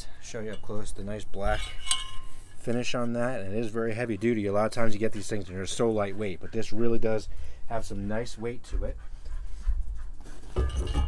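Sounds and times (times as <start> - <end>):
metal poles clinking: 0.4 - 2.8, 10.5 - 11.0.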